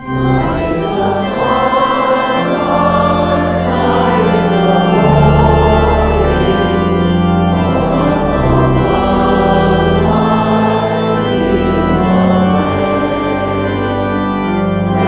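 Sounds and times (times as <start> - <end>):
church organ playing a hymn: 0.0 - 15.0
congregation singing: 0.0 - 15.0.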